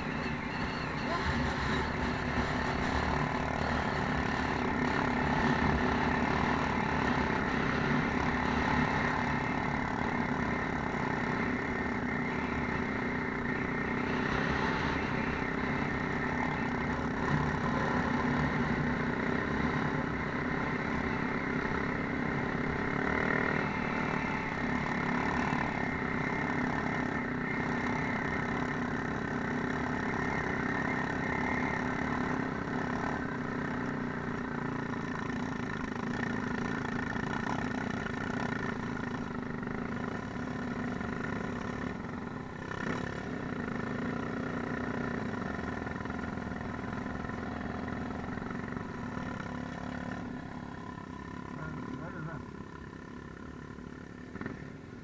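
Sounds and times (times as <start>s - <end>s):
off-road vehicle engines running: 0.0s - 55.0s.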